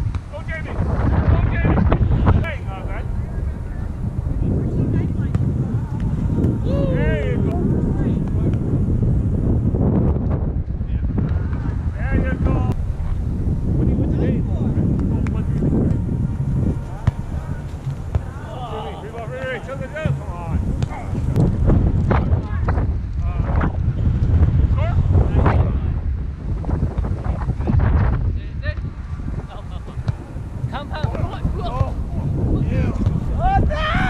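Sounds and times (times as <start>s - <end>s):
wind on microphone: 0.0s - 34.0s
players calling out: 14.9s - 21.4s.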